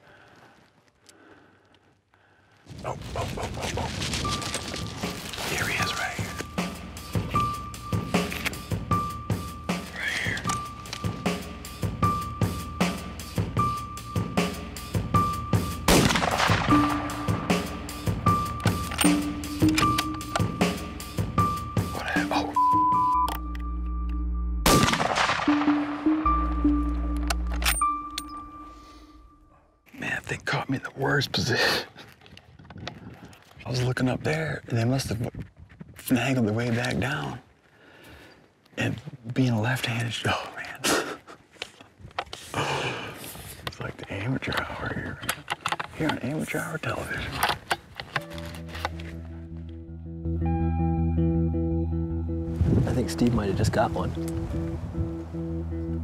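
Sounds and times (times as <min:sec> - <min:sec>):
background music tones: 0:04.1 - 0:29.9, 0:48.1 - 0:56.0
rifle shot: 0:15.9 - 0:17.5, 0:24.6 - 0:25.9.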